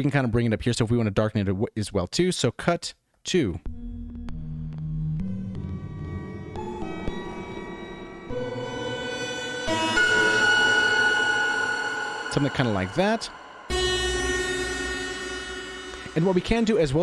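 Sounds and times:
detuned synthesizer chords: 0:03.7 - 0:17.0.

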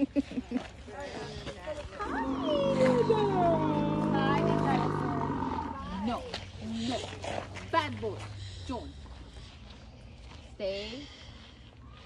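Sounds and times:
recorded dinosaur roar: 0:02.1 - 0:06.2.

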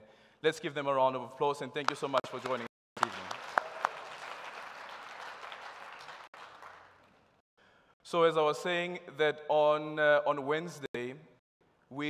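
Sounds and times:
audience applauding: 0:01.9 - 0:07.4.

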